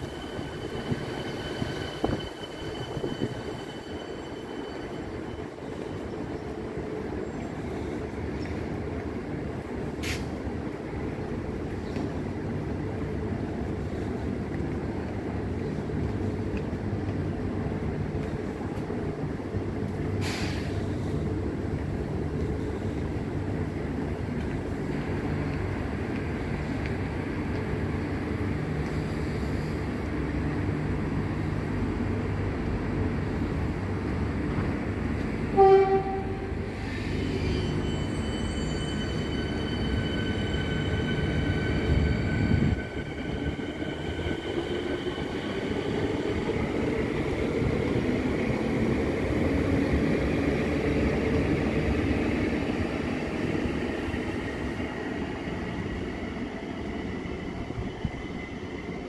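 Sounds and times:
electric train humming: 0.0 - 59.0
train horn blast: 35.5 - 36.8.

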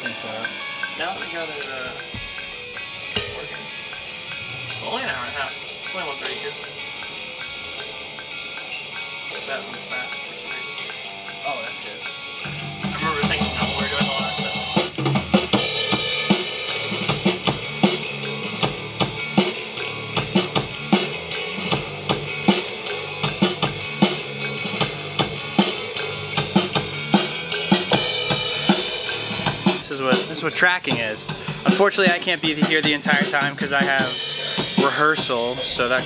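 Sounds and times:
drum kit playing fast beat: 0.0 - 36.0
low pitched tone: 1.8 - 9.0.

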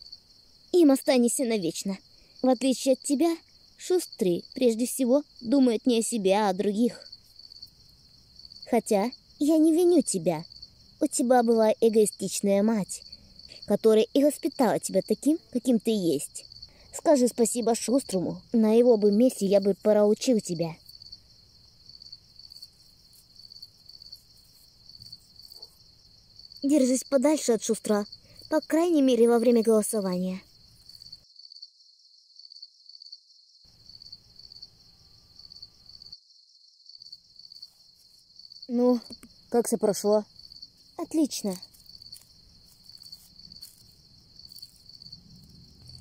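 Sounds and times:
crickets chirping: 0.0 - 46.0.

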